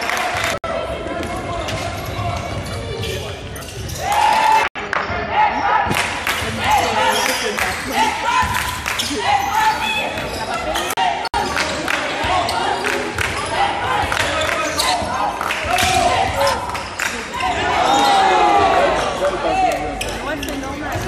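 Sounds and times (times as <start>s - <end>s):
players calling out: 5.3s - 21.0s.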